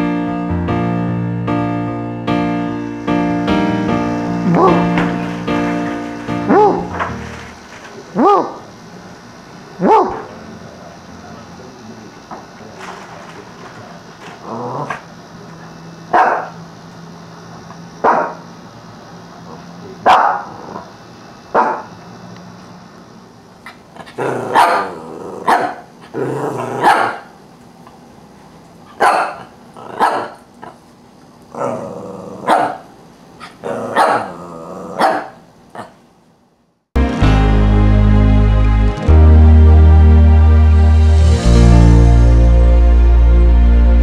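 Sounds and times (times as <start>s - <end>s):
dog barking low: 4.5s - 4.9s, 6.5s - 7.0s, 8.1s - 8.7s, 9.8s - 10.3s, 16.1s - 16.6s, 20.0s - 20.9s, 24.5s - 25.8s, 26.8s - 27.3s, 29.0s - 30.4s, 32.4s - 32.8s, 33.9s - 35.9s.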